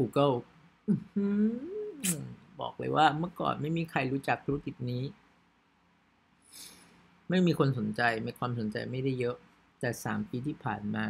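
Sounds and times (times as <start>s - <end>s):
man speaking: 0.0s - 5.2s, 7.3s - 11.0s
man humming rising pitch: 0.9s - 2.2s.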